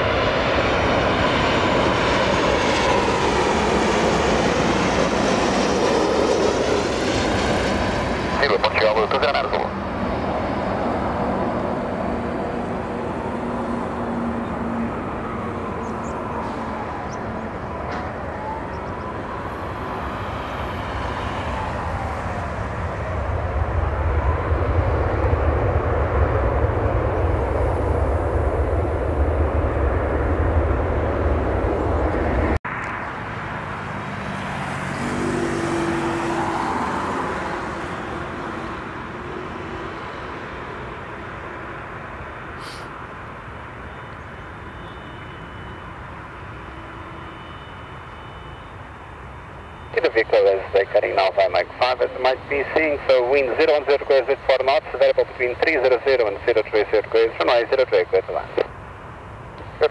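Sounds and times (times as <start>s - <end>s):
airliner engines on approach: 0.0s - 59.9s
jet airliner landing: 0.0s - 59.9s.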